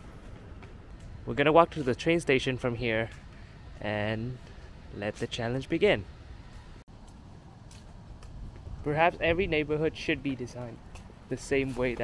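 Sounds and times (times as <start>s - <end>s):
low city rumble: 0.0s - 12.0s
man speaking: 1.2s - 6.2s, 8.8s - 12.0s.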